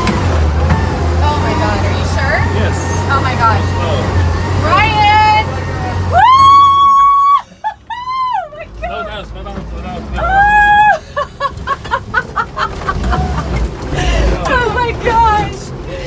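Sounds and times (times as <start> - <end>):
truck engine humming: 0.0 - 16.0
woman screaming: 6.1 - 8.6, 10.2 - 11.0
woman laughing: 7.2 - 8.6, 10.2 - 14.8.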